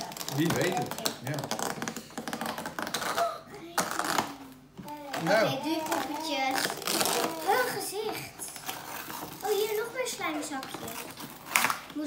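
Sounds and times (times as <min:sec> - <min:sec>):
toy packaging crackling: 0:00.0 - 0:12.0.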